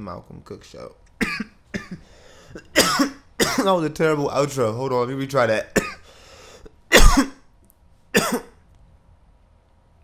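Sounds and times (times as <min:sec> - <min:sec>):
man clearing throat: 0:01.2 - 0:03.6, 0:05.8 - 0:06.0, 0:06.9 - 0:07.4, 0:08.2 - 0:08.6
man coughing: 0:01.2 - 0:03.7, 0:05.8 - 0:06.1, 0:06.9 - 0:07.4, 0:08.2 - 0:08.6.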